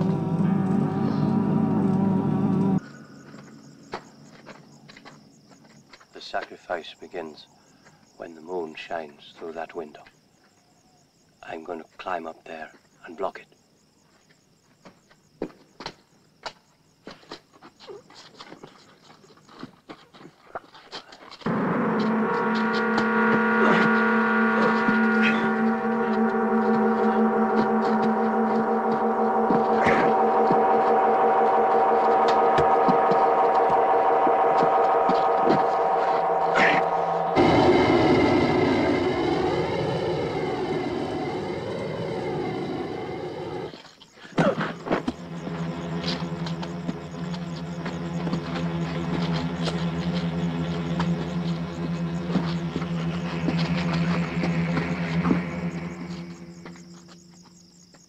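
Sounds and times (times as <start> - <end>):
low steady drone: 0.0 - 3.2, 21.5 - 43.8, 44.8 - 57.3
droning ringing tones: 0.0 - 3.8, 21.5 - 43.8, 44.8 - 57.8
wavering bending tones: 21.5 - 43.7, 44.9 - 57.2.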